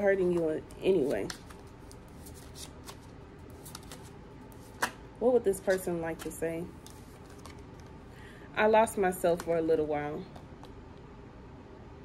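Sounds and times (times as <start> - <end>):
cards shuffled by hand: 0.2 - 5.0, 5.6 - 8.0.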